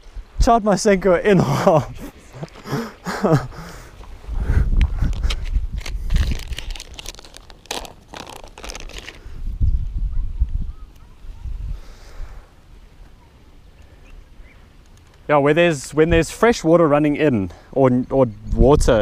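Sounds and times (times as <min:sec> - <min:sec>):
low microphone rumbles: 0:04.1 - 0:06.9
plastic bag crinkling: 0:05.1 - 0:09.4.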